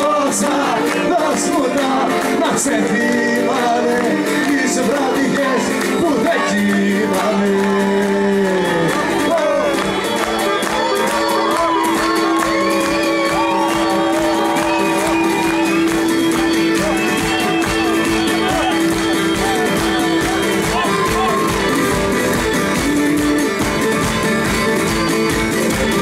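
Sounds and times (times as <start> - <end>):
folk band playing: 0.0 - 26.0
audience shouting: 8.2 - 23.0.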